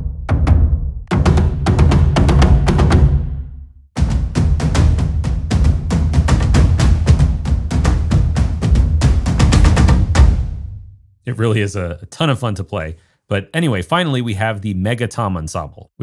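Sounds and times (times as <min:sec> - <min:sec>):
fast dense drum rhythm: 0:00.0 - 0:10.9
deep booming drum hits: 0:00.0 - 0:11.0.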